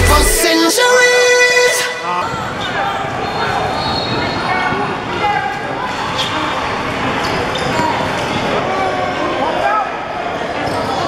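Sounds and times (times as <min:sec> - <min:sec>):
din of many voices: 0:00.0 - 0:11.0.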